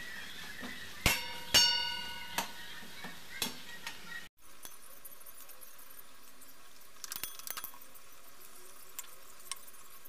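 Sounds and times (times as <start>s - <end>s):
loud ringing clangs: 1.1s - 2.4s.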